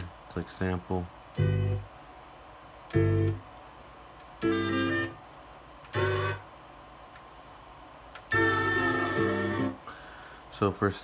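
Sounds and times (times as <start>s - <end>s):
sampler playing pitched note: 6.0s - 6.4s.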